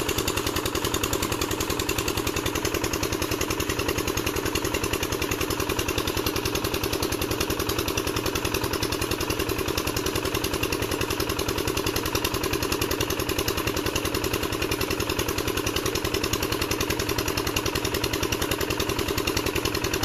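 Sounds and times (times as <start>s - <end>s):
diesel engine chugging: 0.0s - 20.0s
water gushing onto ground: 0.1s - 20.0s.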